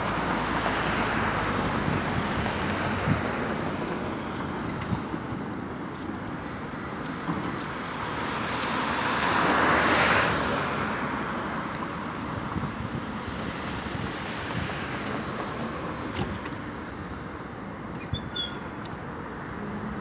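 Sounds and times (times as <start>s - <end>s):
street traffic noise: 0.0s - 20.0s.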